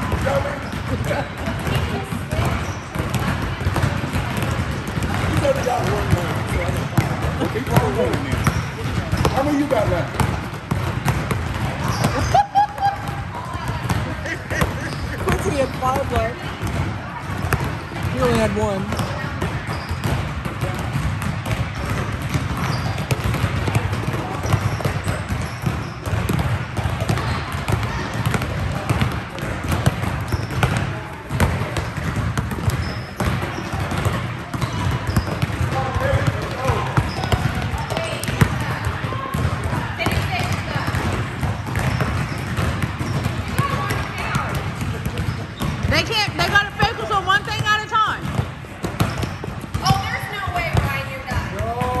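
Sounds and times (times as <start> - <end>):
basketballs bouncing on court: 0.0 - 52.0
crowd chatter: 0.0 - 52.0.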